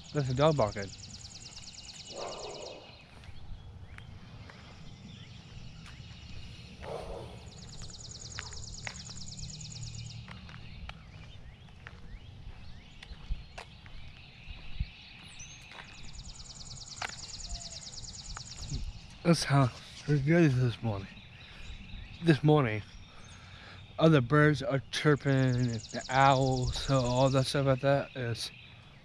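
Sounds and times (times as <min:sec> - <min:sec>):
songbird trills: 0:00.0 - 0:29.0
short bird chirps: 0:01.0 - 0:03.3.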